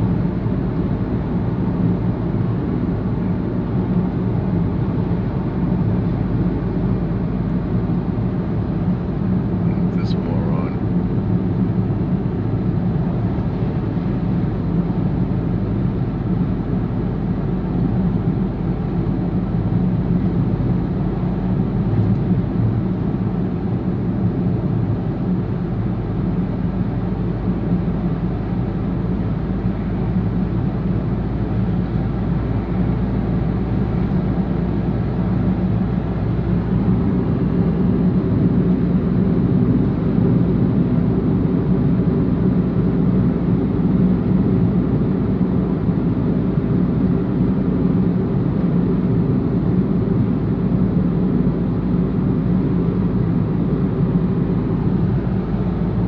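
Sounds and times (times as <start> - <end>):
car cabin road rumble: 9.2 - 41.5.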